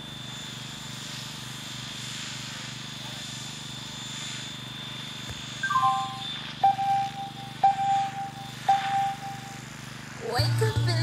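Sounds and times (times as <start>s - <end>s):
model helicopter rotor whine: 0.0s - 11.0s.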